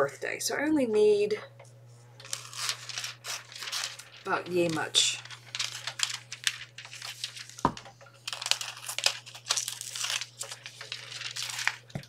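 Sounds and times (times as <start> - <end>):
foil sheet crinkling: 2.2 - 12.0.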